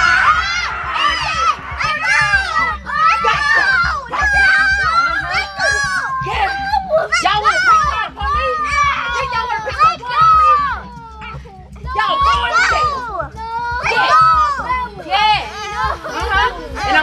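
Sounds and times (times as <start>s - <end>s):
children yelling and crying out: 0.0s - 17.0s.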